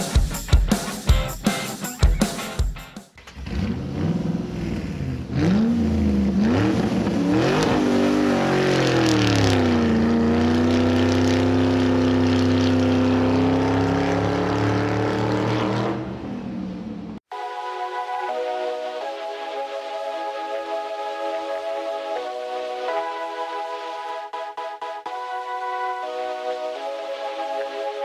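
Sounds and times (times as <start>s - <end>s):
drum music: 0.0s - 3.2s
car engine revving: 3.2s - 17.2s.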